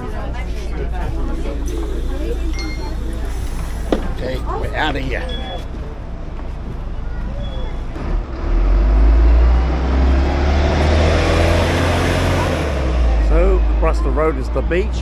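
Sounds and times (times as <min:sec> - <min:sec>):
bus engine accelerating: 0:00.0 - 0:15.0
road noise rushing: 0:00.0 - 0:15.0.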